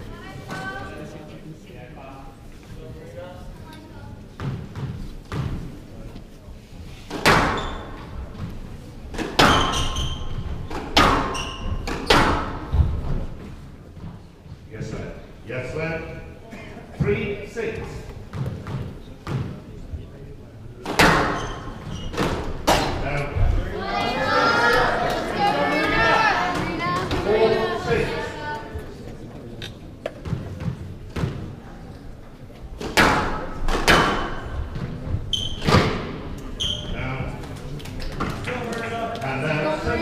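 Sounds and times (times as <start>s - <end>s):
squash ball cracking off walls: 7.1s - 7.8s, 9.1s - 10.0s, 10.6s - 12.8s, 20.8s - 23.0s, 32.8s - 34.9s
shoes squeaking on wooden floor: 7.4s - 8.8s, 9.4s - 14.7s, 21.1s - 22.8s, 34.3s - 37.1s
spectators murmuring: 16.1s - 35.3s, 35.9s - 40.0s
squash ball cracks echoing: 32.8s - 34.6s.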